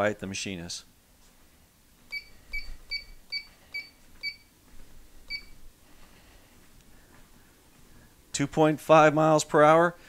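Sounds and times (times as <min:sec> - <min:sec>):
treadmill console beeping: 0:02.1 - 0:04.5, 0:05.3 - 0:05.6.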